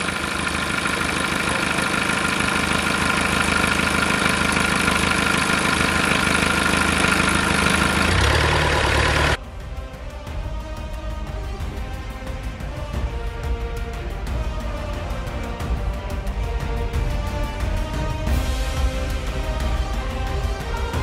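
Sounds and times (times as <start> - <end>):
boat engine running: 0.0 - 9.4
music: 9.4 - 21.0.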